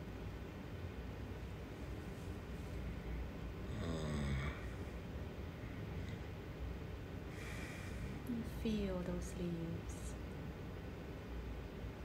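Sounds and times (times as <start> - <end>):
steady low background hum: 0.0 - 12.0
man's low closed-mouth hum: 3.5 - 5.0.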